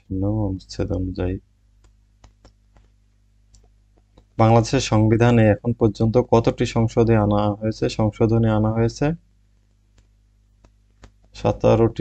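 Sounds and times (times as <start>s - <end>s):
person speaking: 0.0s - 1.4s, 3.6s - 9.2s, 11.0s - 12.0s
low steady hum: 0.0s - 12.0s
faint clicks: 1.8s - 4.4s, 9.7s - 11.4s.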